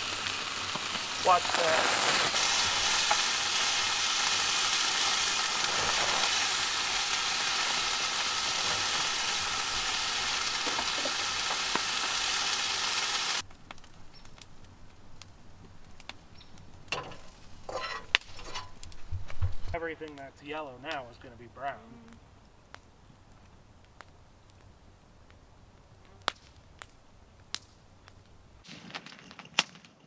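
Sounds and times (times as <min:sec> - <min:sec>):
rain on canvas awning: 0:00.0 - 0:13.5.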